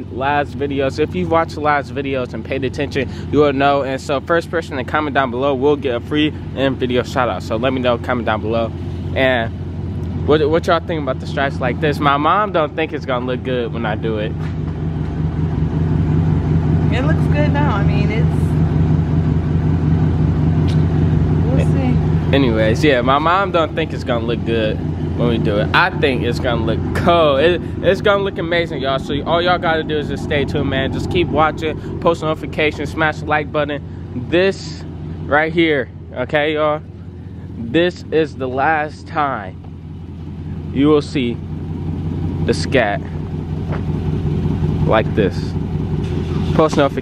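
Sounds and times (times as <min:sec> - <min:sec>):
car engine idling: 0:00.0 - 0:47.0.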